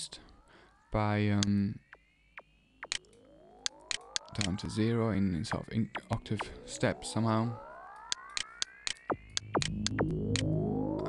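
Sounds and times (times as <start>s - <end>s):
synthesizer tones gliding upward: 0.0s - 11.0s
sharp ticks: 1.4s - 4.7s, 5.5s - 6.8s, 8.0s - 11.0s.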